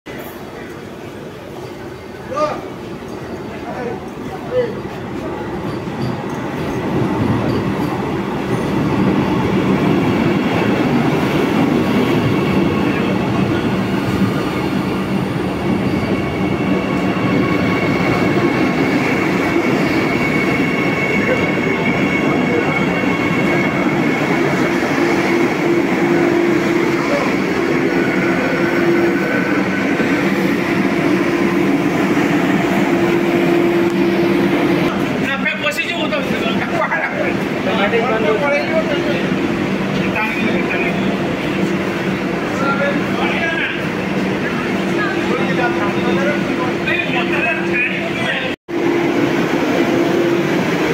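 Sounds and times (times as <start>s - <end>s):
train rolling past: 0.1s - 50.9s
train whining tones: 1.6s - 50.9s.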